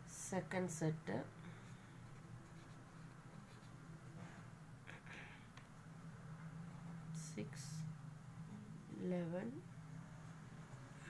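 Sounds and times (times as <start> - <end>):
steady low hum: 0.0 - 11.0
pen scratching on paper: 2.0 - 4.4.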